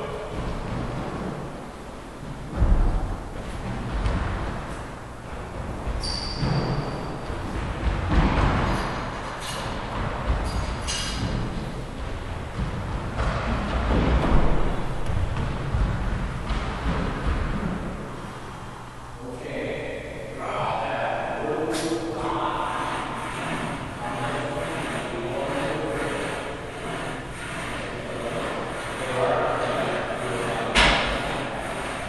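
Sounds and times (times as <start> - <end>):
shoe squeaks on wooden floor: 5.9 - 7.3.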